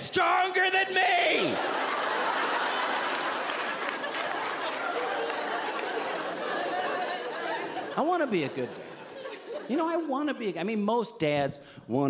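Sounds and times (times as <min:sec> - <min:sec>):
audience laughing: 0:01.2 - 0:10.3.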